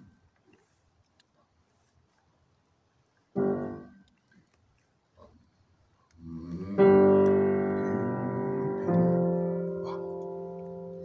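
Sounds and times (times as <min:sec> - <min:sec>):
grand piano chords: 0:03.4 - 0:04.0, 0:06.4 - 0:11.0.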